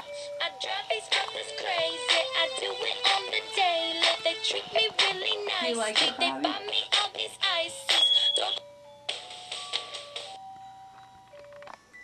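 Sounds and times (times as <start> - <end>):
toy electronic beeping tune: 7.9 - 8.7.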